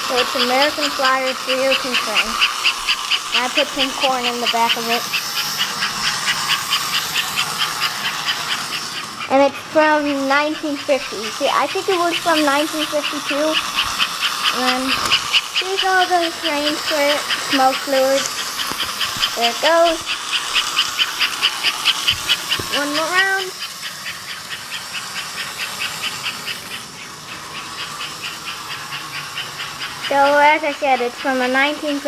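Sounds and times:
faint running hum: 0.0s - 32.0s
toy steam locomotive chuffing: 0.0s - 32.0s.

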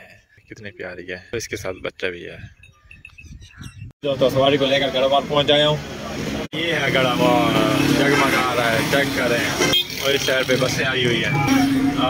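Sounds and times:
road traffic: 4.0s - 12.0s
motorcycles passing: 4.2s - 12.0s.

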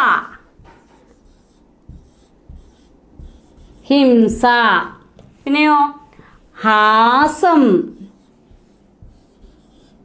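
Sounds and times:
marker pen writing on whiteboard: 0.0s - 5.4s, 6.8s - 10.0s.

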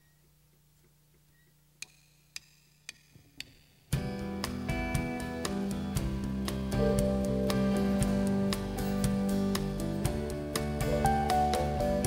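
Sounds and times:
rock band playing: 4.0s - 12.0s.

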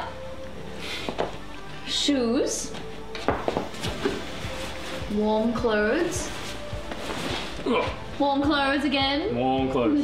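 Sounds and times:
clothing rustling: 2.8s - 8.3s.

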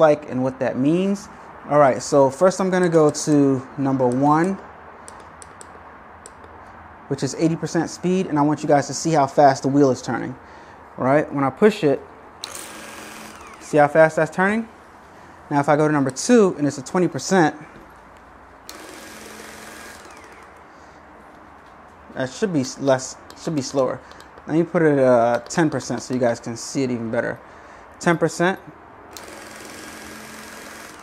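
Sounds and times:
falling motor whine: 12.4s - 13.8s, 18.7s - 20.6s, 29.1s - 31.0s
push buttons clicking: 25.1s - 26.4s.

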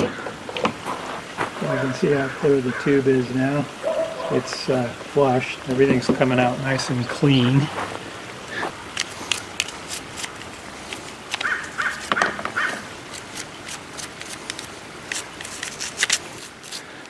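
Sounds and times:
toothbrush scrubbing plastic: 9.0s - 17.0s.

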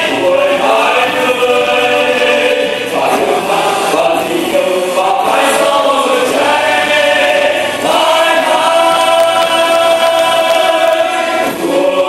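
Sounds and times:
choir singing: 0.0s - 12.0s
musical accompaniment: 0.0s - 12.0s.

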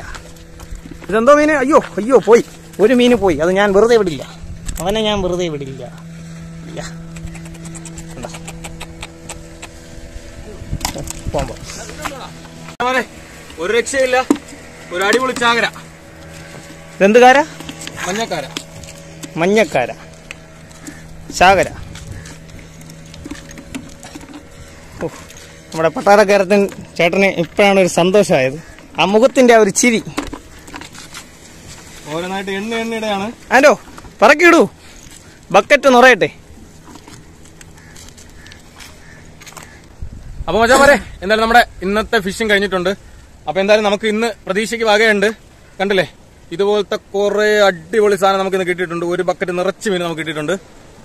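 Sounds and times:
engine-like hum: 0.0s - 51.0s
sharp clicks and taps on rocks: 7.2s - 9.7s.

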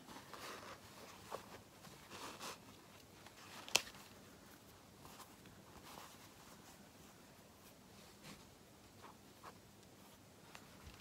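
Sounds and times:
fabric rustling and scratching: 0.0s - 11.0s.

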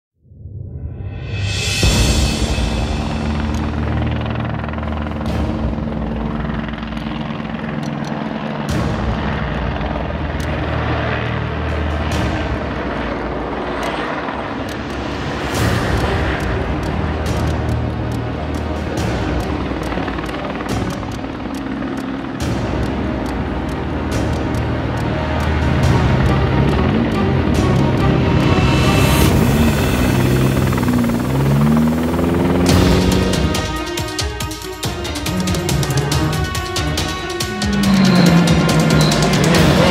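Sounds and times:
helicopter rotor beat: 1.4s - 39.9s
car engine running: 11.6s - 39.9s.

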